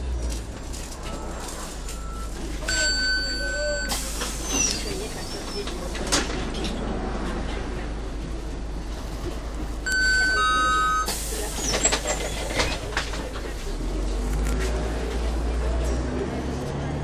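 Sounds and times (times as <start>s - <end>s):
bus diesel engine droning: 0.0s - 17.0s
pneumatic doors hissing shut: 3.9s - 5.7s, 11.1s - 12.9s.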